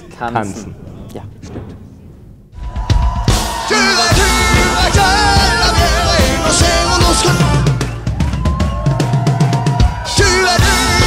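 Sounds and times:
fast drum strikes: 1.3 - 11.0.

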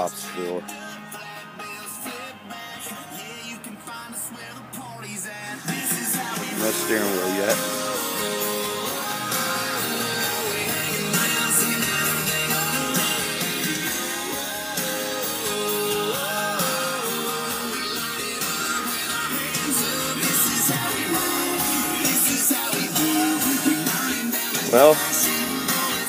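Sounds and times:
song on car stereo: 0.0 - 26.0.

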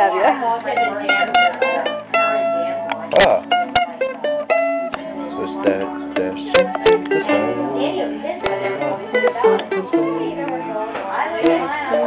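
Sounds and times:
mandolin picked with a flatpick: 0.6 - 12.0.

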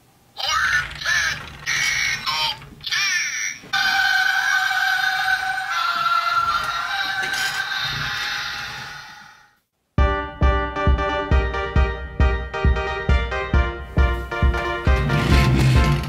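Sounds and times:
warbling electronic bursts: 0.4 - 3.0.

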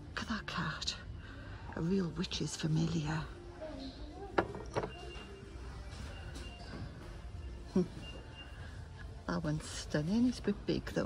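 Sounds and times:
shop background hum: 0.0 - 11.0.

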